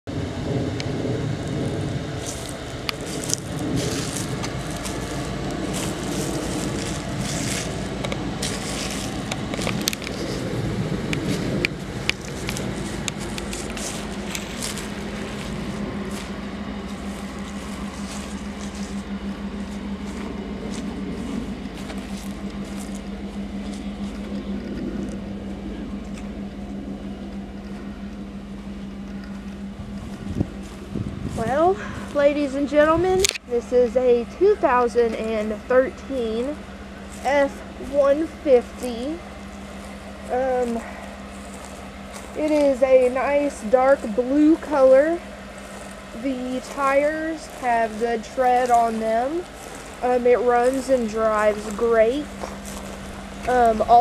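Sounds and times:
pickup engine idling: 0.0 - 54.0
footsteps on dry grass: 1.2 - 54.0.

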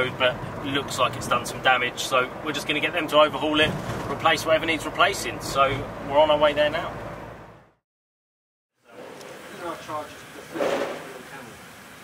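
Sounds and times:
men talking indistinctly: 0.0 - 7.0.

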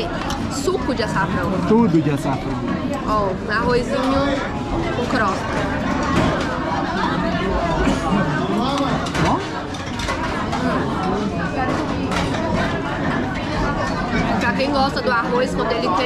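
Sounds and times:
many voices talking: 0.0 - 16.0.

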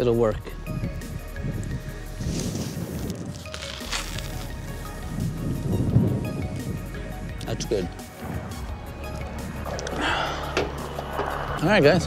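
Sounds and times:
soft background music: 0.0 - 12.0
low rumbling noise: 4.2 - 12.0.

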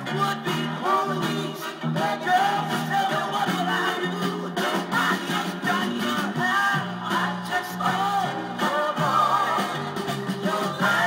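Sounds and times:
person singing: 0.0 - 11.0
soul record playing: 0.0 - 11.0.

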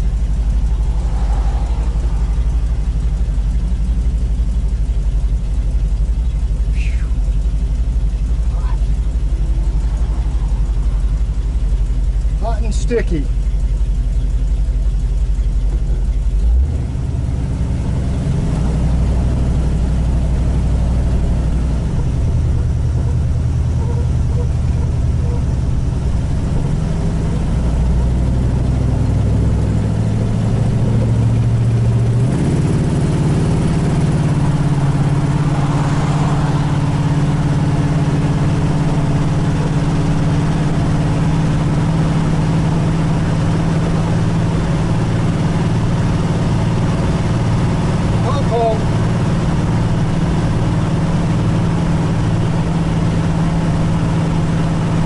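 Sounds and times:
car engine while driving: 0.0 - 55.0.

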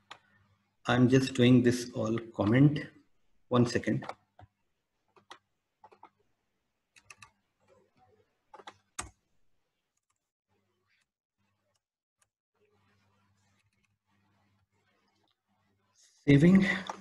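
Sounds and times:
computer keyboard and mouse clicks: 4.0 - 6.2, 6.9 - 7.8, 8.5 - 9.2.

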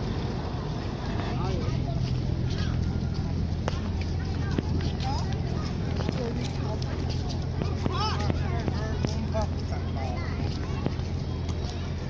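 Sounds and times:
people talking in background: 0.0 - 12.0
steady low rumble: 0.0 - 12.0.

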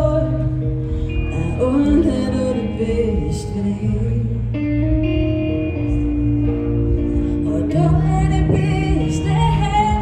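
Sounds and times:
live band with guitar: 0.0 - 10.0.

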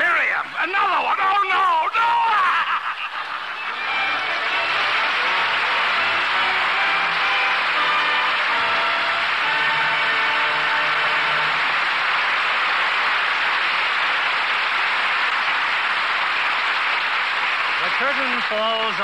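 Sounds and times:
audience applauding: 1.9 - 19.0
closing music: 3.6 - 14.5.

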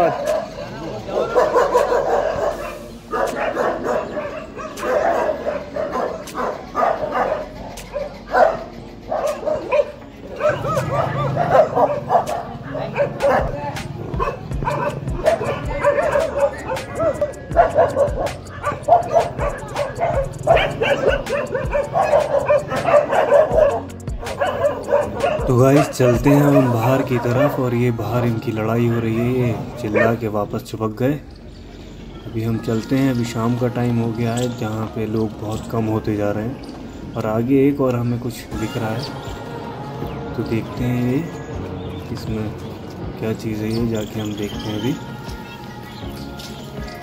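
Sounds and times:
dogs barking and fighting: 0.0 - 47.0
music: 0.0 - 47.0.

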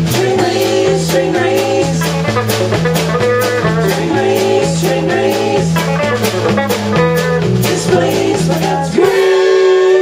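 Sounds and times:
drum kit steady beat: 0.0 - 10.0
electric bass: 0.0 - 10.0
electric guitars: 0.0 - 10.0.

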